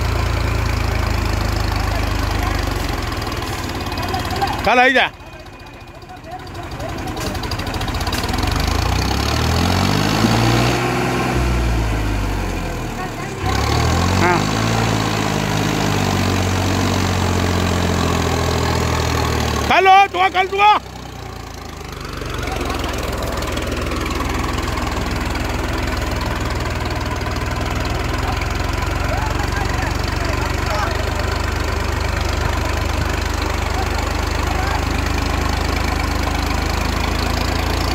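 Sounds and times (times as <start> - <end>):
tractor diesel engine straining: 0.0 - 37.9.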